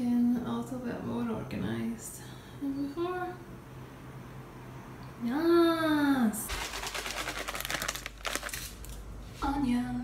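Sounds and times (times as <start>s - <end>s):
plastic bag crinkling: 6.5s - 9.0s.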